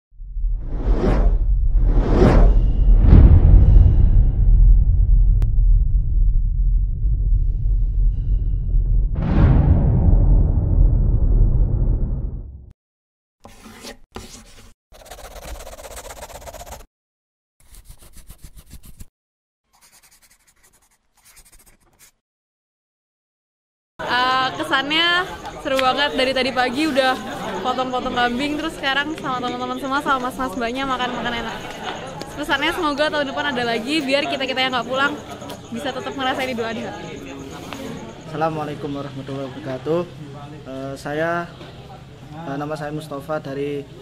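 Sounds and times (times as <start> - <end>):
cinematic whoosh: 0.2 - 12.7
deep steady rumble: 0.2 - 12.7
scratchy scribbling on paper: 13.5 - 16.9, 17.6 - 19.1, 19.7 - 22.2.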